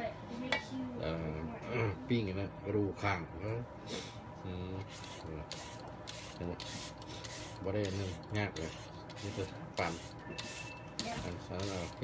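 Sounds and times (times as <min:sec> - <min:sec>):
shredder scraping papaya: 0:04.8 - 0:12.0.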